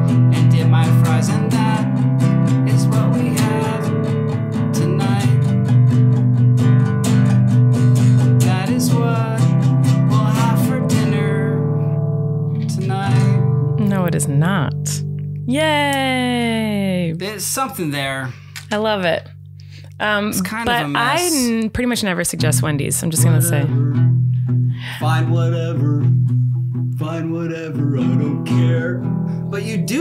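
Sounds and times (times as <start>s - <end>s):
acoustic guitar strumming: 0.0s - 30.0s.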